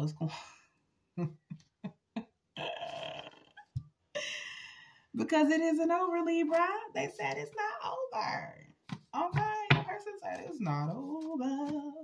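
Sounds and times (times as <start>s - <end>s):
woman laughing: 1.2s - 3.6s.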